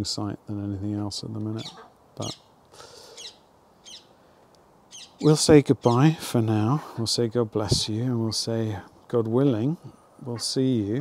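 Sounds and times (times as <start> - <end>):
birds chirping: 1.1 - 11.0.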